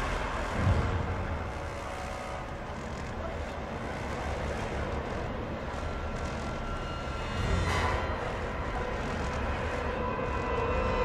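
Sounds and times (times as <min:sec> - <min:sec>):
rumbling noise drone: 0:00.0 - 0:11.0.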